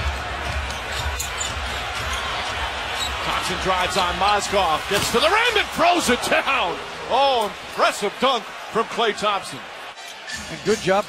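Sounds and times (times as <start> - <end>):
arena crowd hum: 0.0 - 11.0.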